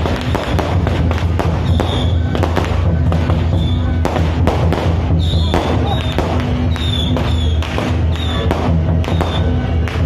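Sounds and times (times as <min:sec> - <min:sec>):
firecrackers popping: 0:00.0 - 0:10.0
loud music: 0:00.0 - 0:10.0
steady low drone: 0:00.0 - 0:10.0.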